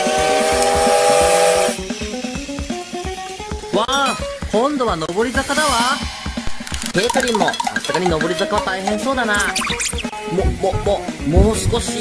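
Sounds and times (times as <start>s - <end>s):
steam locomotive whistle: 0.0s - 1.8s
steam hissing: 0.0s - 3.6s, 5.1s - 10.3s
background music: 6.0s - 10.4s.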